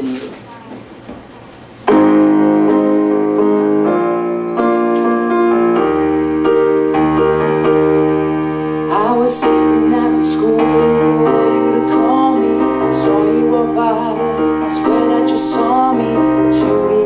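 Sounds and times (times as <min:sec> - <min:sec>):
electronic keyboard piano chords: 0:01.8 - 0:17.0.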